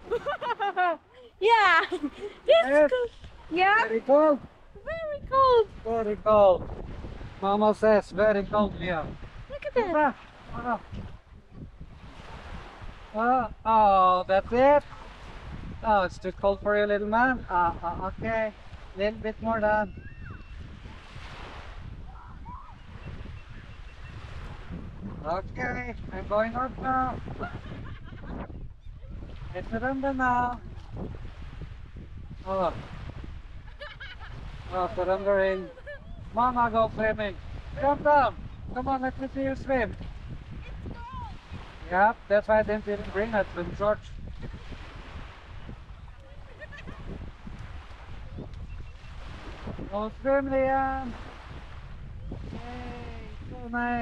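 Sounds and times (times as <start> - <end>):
small waves lapping on sand: 0.0 - 28.3, 29.0 - 54.0
wind rumbling on microphone: 0.0 - 54.0.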